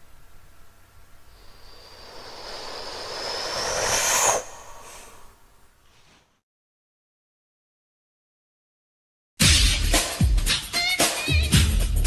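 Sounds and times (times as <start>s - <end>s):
faint high tone climbing: 1.1s - 5.8s
rising whoosh: 1.4s - 5.7s.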